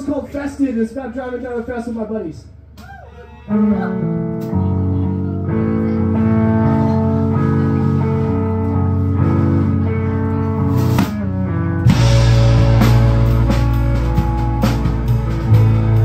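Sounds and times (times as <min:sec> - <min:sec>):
live rock band: 0:03.4 - 0:16.0.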